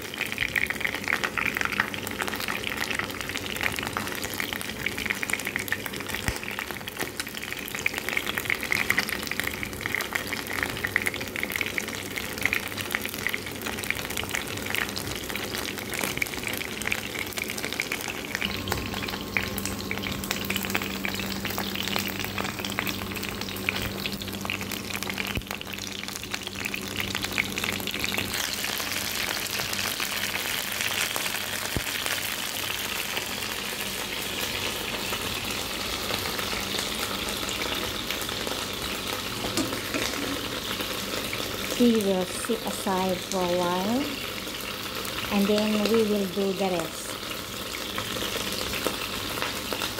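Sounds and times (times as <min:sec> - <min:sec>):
chicken sizzling in hot oil: 0:00.0 - 0:49.9.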